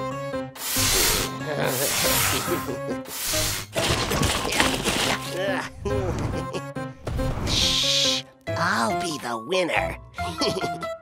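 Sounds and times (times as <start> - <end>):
cartoon background music: 0.0 - 11.0
hissing whooshes: 0.6 - 3.8, 7.5 - 8.2.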